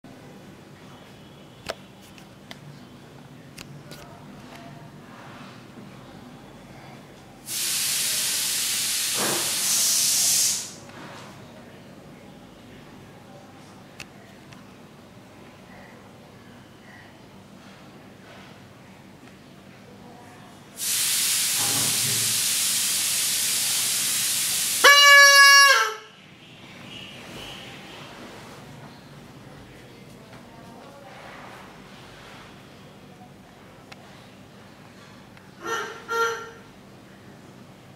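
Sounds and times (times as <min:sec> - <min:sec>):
loud steady hiss: 0:07.4 - 0:10.9, 0:20.8 - 0:25.3
high toy whistle note: 0:24.8 - 0:26.0.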